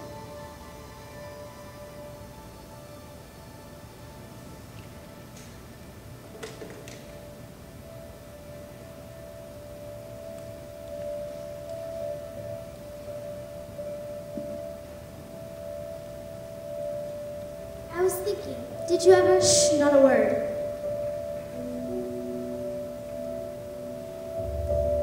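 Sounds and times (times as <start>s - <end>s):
sustained musical tone: 0.0s - 6.3s, 6.9s - 25.0s
faint hall noise: 0.0s - 25.0s.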